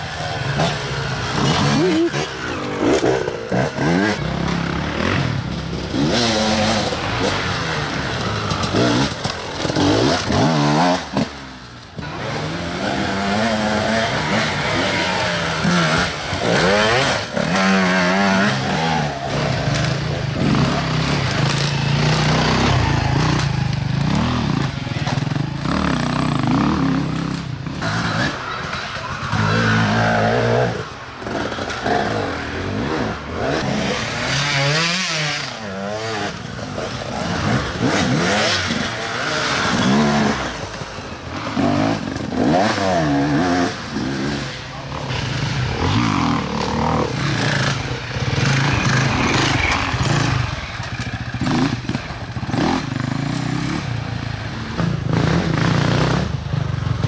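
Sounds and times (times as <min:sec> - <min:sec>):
motorcycles revving hard: 0:00.0 - 0:57.0.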